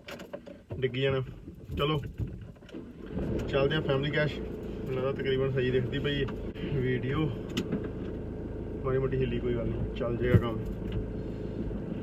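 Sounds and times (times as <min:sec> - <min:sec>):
car engine idling: 0:00.4 - 0:12.0.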